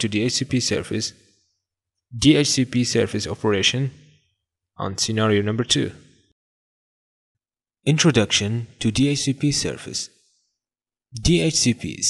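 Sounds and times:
person narrating: 0:04.8 - 0:06.0.

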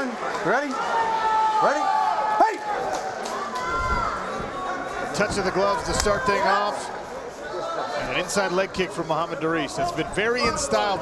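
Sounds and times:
crowd cheering and yelling: 0:00.0 - 0:08.7.

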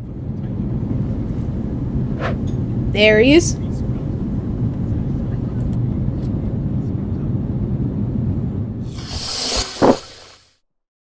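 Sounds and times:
jet engine rumble: 0:00.0 - 0:10.4
rushing hiss: 0:08.9 - 0:10.5.

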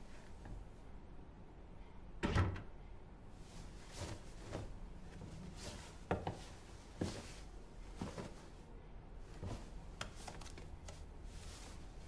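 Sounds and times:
clothing rustling: 0:03.3 - 0:12.0.

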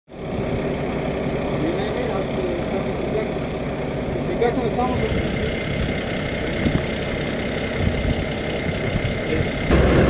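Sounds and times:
diesel engine idling: 0:00.1 - 0:10.0.

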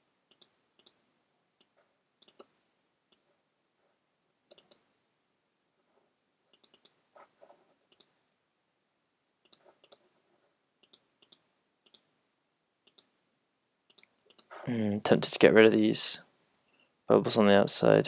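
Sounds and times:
computer mouse clicks: 0:00.3 - 0:01.0, 0:01.6 - 0:03.3, 0:04.5 - 0:04.9, 0:06.5 - 0:07.0, 0:07.9 - 0:08.2, 0:09.4 - 0:10.1, 0:10.8 - 0:12.1, 0:12.8 - 0:13.1, 0:13.9 - 0:14.5.

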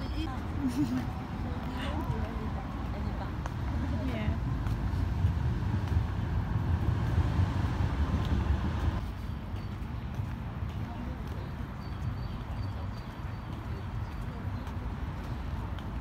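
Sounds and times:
low rumble: 0:03.4 - 0:09.0.

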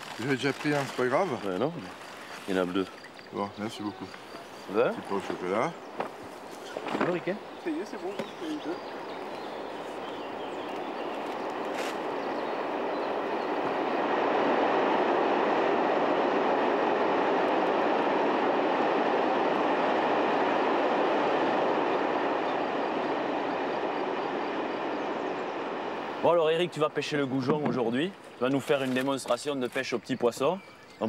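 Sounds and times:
freight train rolling past: 0:00.0 - 0:30.0.

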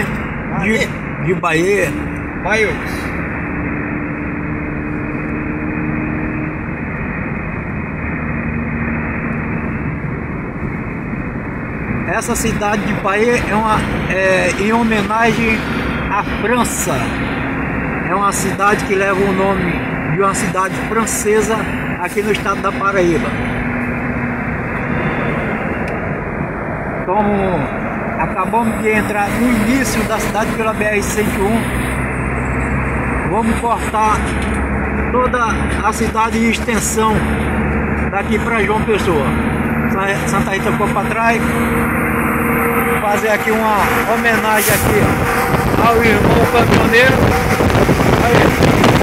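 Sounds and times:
car road noise at highway speed: 0:00.0 - 0:49.0
low engine hum: 0:00.0 - 0:49.0.

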